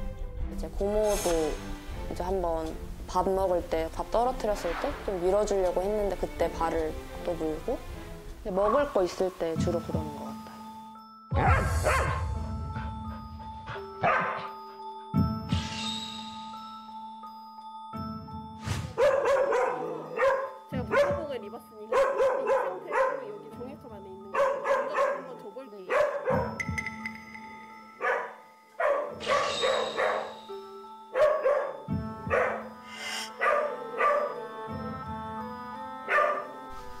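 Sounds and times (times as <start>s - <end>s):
background music: 0.0s - 37.0s
dog barking: 11.4s - 12.2s, 13.7s - 14.6s, 19.0s - 21.3s, 21.9s - 23.4s, 24.3s - 26.6s, 28.0s - 30.5s, 31.1s - 34.4s, 36.1s - 36.6s.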